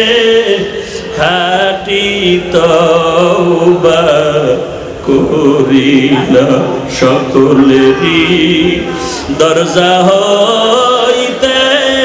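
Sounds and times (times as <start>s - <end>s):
man chanting through loudspeaker: 0.0s - 12.0s.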